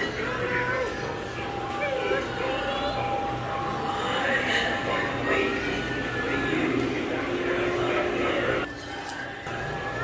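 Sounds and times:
steady low hum: 0.0s - 8.8s
indistinct background voices: 0.0s - 9.8s.

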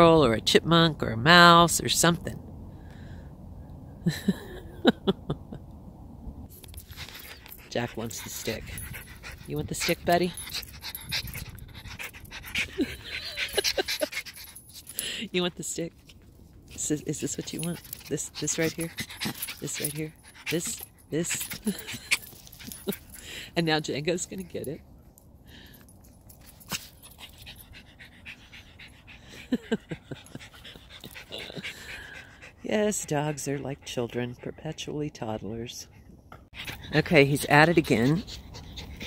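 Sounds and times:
small dog panting: 6.9s - 15.4s, 17.1s - 24.7s, 26.5s - 39.0s.

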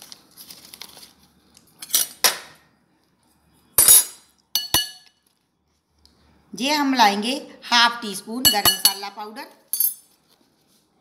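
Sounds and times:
steel spoon clinking glass bowl: 3.8s - 5.2s, 8.5s - 9.1s.

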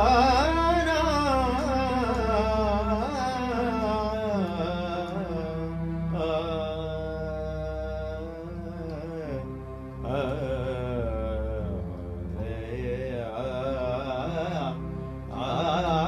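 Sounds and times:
steady low drone: 0.0s - 16.0s.

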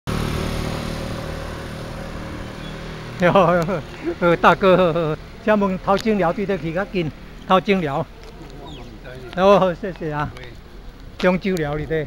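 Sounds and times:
motorcycle engine running: 0.1s - 12.0s.

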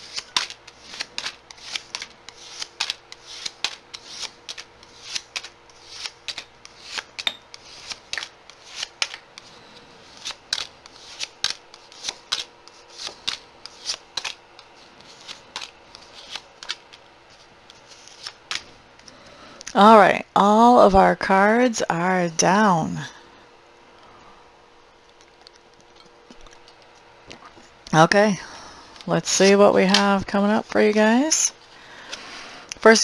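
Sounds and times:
cards snapping and slapping: 0.0s - 9.5s, 10.1s - 19.2s.

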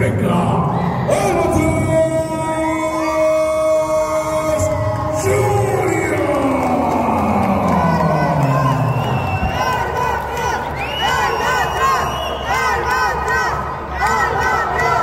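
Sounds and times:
noisy crowd: 0.0s - 15.0s.

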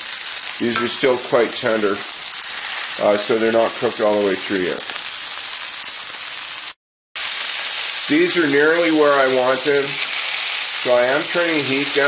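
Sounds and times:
sausages sizzling in a frying pan: 0.0s - 12.0s.

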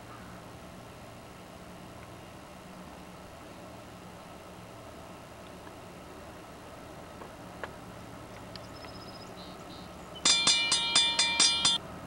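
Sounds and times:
railroad warning bell clanging: 10.2s - 11.8s.

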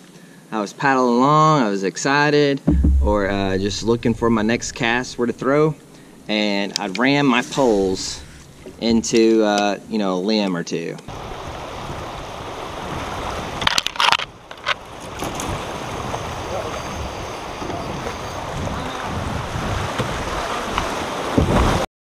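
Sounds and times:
sharp knocks: 2.7s - 5.6s
river water rushing and splashing: 7.2s - 9.5s, 11.1s - 21.8s.

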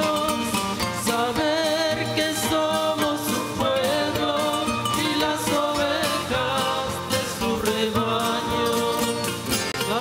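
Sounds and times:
acoustic guitar: 0.0s - 10.0s
group singing a hymn: 0.0s - 10.0s.

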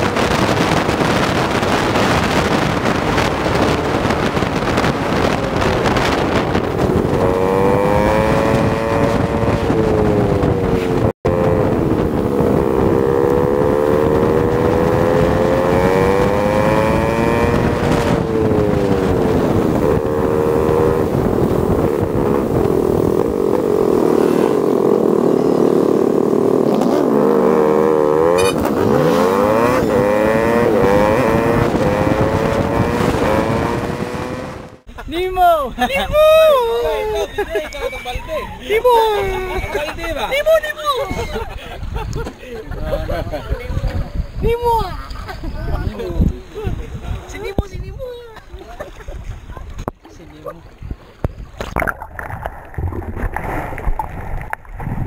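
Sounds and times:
motorcycle engine revving: 0.0s - 34.9s
wind noise on microphone: 0.0s - 55.0s.

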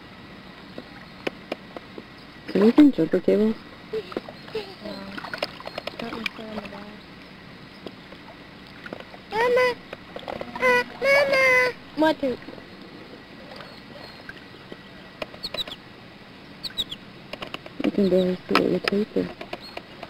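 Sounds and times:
steady outdoor hiss: 0.0s - 20.0s
child calling out: 9.3s - 9.8s, 10.5s - 11.8s.

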